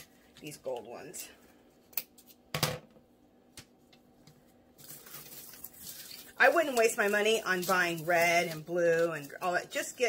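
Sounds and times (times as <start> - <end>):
artificial flowers rustling: 4.4 - 10.0.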